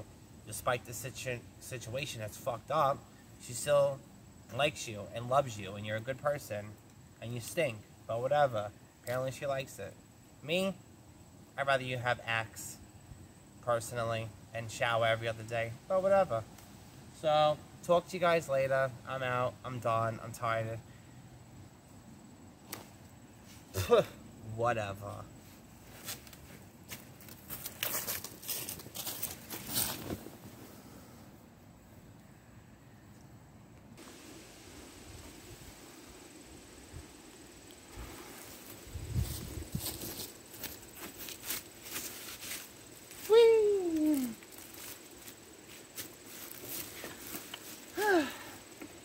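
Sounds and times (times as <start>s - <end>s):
footsteps crunching dry leaves: 25.4s - 30.4s, 38.3s - 48.0s
woman's short vocal sound: 43.3s - 44.4s, 48.0s - 48.6s.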